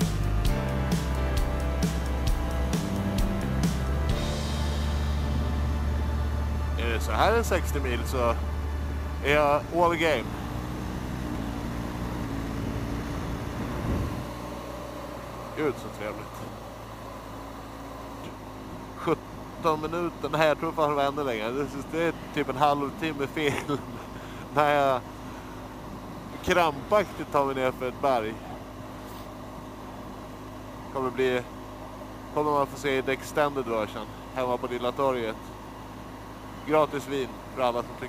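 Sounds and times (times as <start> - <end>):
wind and road noise: 0.0 - 19.6
motorcycle engine running: 0.0 - 32.4.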